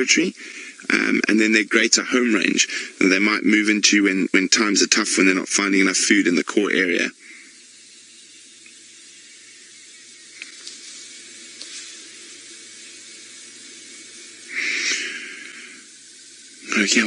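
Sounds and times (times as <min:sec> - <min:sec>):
background hiss: 0:00.0 - 0:17.0
faint hum: 0:00.0 - 0:17.0
faint ticks: 0:08.6 - 0:08.8, 0:10.3 - 0:17.0
short breathy rush of noise: 0:14.5 - 0:15.9.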